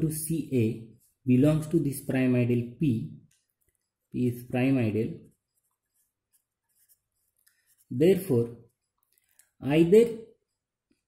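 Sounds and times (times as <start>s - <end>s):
marker pen scratching on paper: 0.1s - 11.0s.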